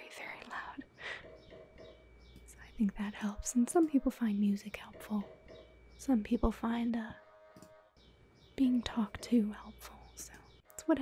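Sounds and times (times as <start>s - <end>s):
woman whispering: 0.0s - 0.9s, 2.5s - 5.2s, 8.6s - 10.5s
faint low hum: 0.0s - 11.0s.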